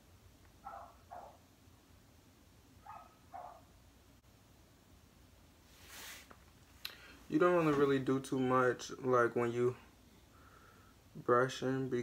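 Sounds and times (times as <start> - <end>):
faint distant dog barking: 0.6 - 1.5, 2.8 - 3.8.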